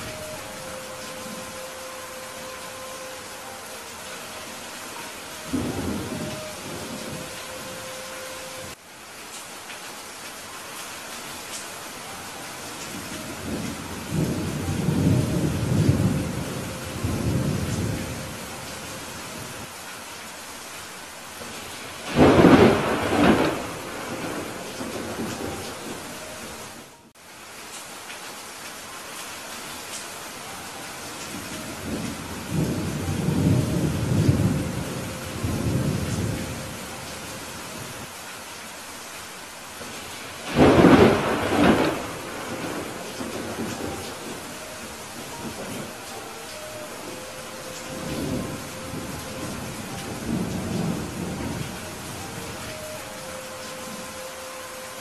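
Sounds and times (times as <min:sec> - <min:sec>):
steady rain: 0:00.0 - 0:55.0
rolling thunder rumble: 0:22.0 - 0:26.2, 0:40.4 - 0:46.0
sharp thunderclap: 0:22.1 - 0:24.4, 0:40.5 - 0:43.9.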